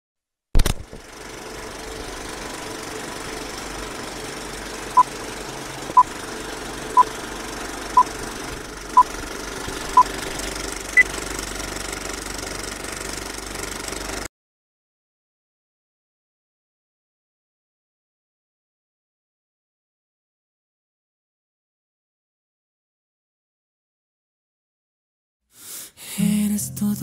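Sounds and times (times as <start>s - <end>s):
sharp click: 0.6s - 1.0s
film projector rattle: 0.6s - 14.3s.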